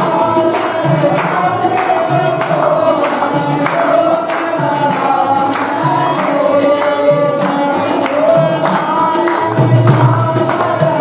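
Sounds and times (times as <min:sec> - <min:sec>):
group singing devotional song: 0:00.0 - 0:11.0
hand clapping: 0:00.0 - 0:11.0
percussion: 0:00.0 - 0:11.0.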